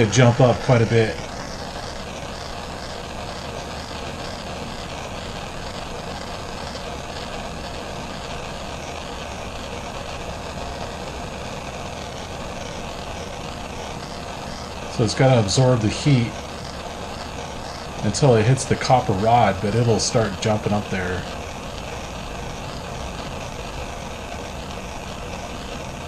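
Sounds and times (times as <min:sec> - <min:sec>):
propane torch hissing: 0:00.0 - 0:26.0.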